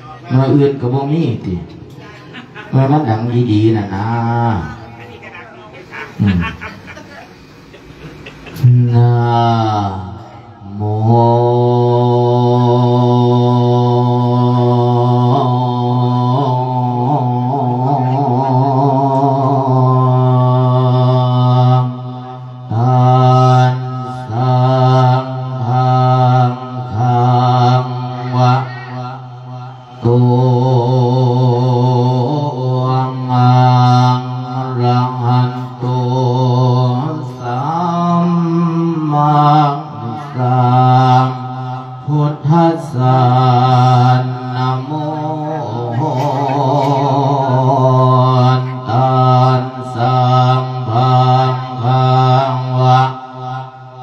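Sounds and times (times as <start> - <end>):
man chanting into a microphone: 0.0 - 5.2, 8.5 - 54.0.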